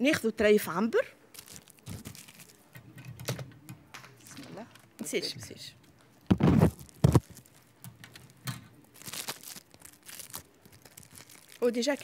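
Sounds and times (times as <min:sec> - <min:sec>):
plastic bag crinkling: 0:01.3 - 0:02.7, 0:06.3 - 0:12.0.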